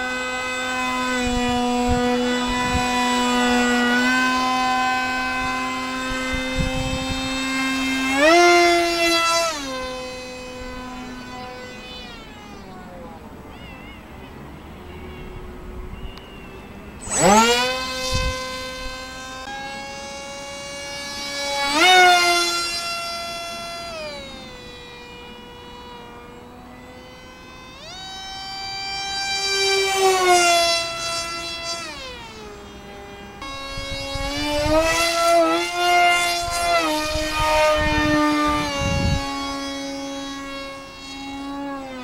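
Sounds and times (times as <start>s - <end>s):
model jet motor whining: 0.0s - 42.0s.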